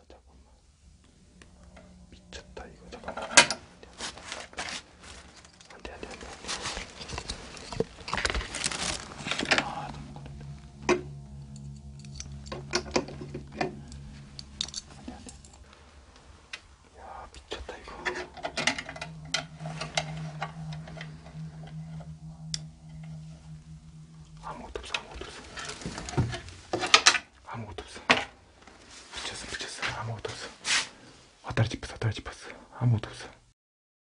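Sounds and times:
low steady hum: 0.0s - 32.2s.

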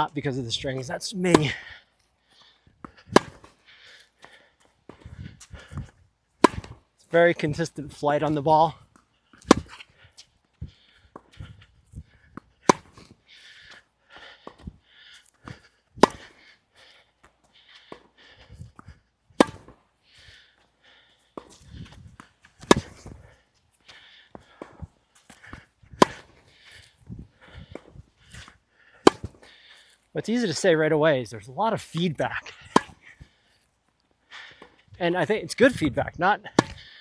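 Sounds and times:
tennis ball struck by racquet: 1.3s - 1.6s, 3.0s - 3.5s, 6.4s - 6.8s, 9.4s - 9.8s, 12.4s - 13.1s, 16.0s - 16.4s, 19.4s - 19.8s, 22.6s - 23.2s, 25.5s - 26.5s, 29.0s - 29.5s, 32.3s - 33.3s, 36.5s - 36.8s.

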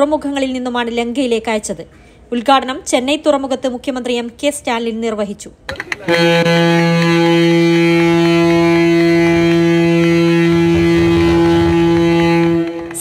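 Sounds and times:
ship's horn blast: 6.0s - 13.0s.

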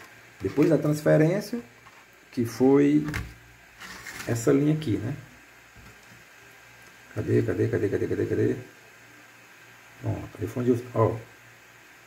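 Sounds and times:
faint steady hiss: 0.0s - 12.0s
man speaking: 0.4s - 1.7s, 2.3s - 3.2s, 4.2s - 5.3s, 7.1s - 8.7s, 10.0s - 11.3s.

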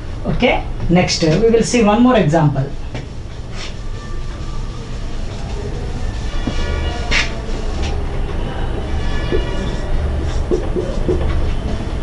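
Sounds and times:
steady low rumble: 2.8s - 10.6s
whiteboard wiped with duster: 3.4s - 8.2s, 9.2s - 11.6s.

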